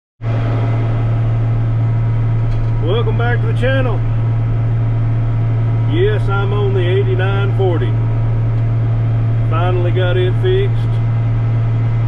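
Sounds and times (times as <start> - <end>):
tractor diesel engine droning: 0.2 - 12.0.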